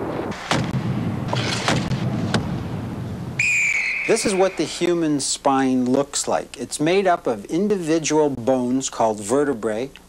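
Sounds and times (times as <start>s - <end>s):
referee's whistle: 3.4s - 4.8s.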